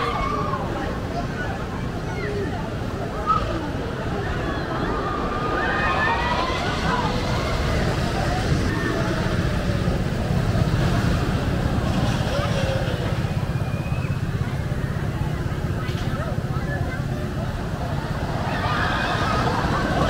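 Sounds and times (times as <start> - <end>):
distant voices: 0.0 - 20.0
steady low rumble: 0.0 - 20.0.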